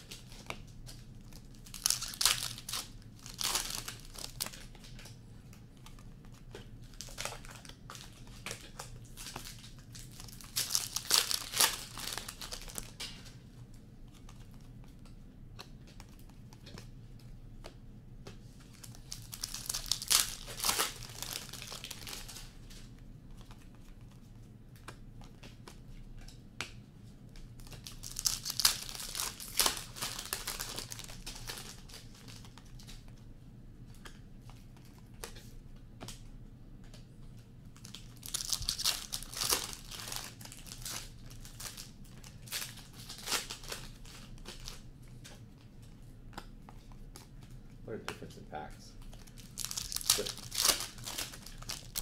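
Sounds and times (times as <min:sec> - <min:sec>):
foil wrappers crinkling and tearing: 0:00.0 - 0:05.2, 0:05.8 - 0:13.4, 0:18.7 - 0:24.0, 0:27.5 - 0:33.1, 0:37.8 - 0:45.4, 0:49.0 - 0:52.0.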